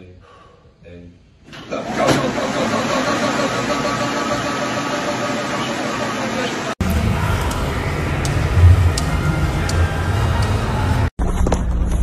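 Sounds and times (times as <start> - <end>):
fan flywheel whirring: 1.5 - 11.1.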